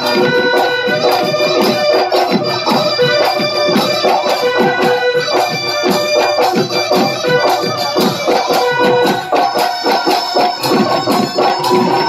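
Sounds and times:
fast drum beat: 0.0 - 12.0.

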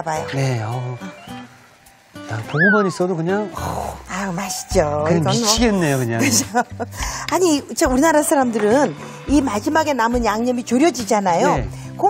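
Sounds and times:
quiet background music: 0.0 - 12.0
person exclaiming: 2.5 - 3.0.

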